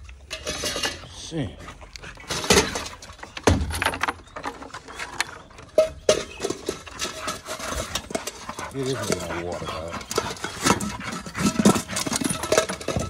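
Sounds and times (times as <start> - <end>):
metal bowl clanking on wood: 0.2 - 1.1, 2.2 - 13.0.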